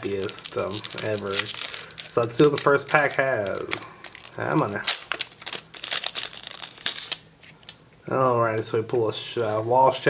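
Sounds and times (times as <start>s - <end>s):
foil wrapper crinkling: 0.0s - 7.8s.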